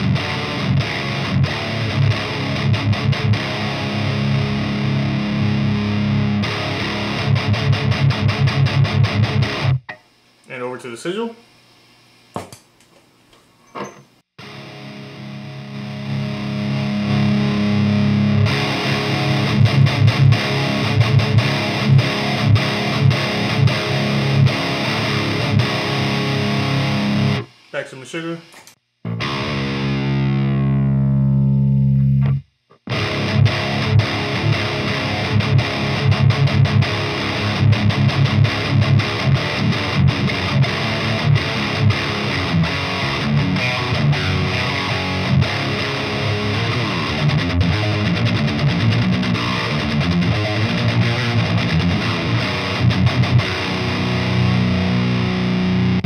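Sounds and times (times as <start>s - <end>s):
distorted electric guitar chugging riffs: 0.0s - 11.2s, 14.4s - 56.0s
guitar chord sliding down in pitch: 29.1s - 56.0s.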